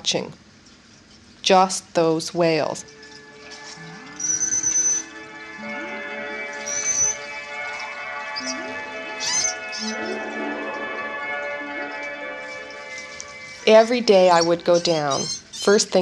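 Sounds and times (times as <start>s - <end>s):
sustained musical tones: 2.4s - 15.2s
whale whistles and chirps: 2.8s - 10.3s, 12.8s - 15.8s.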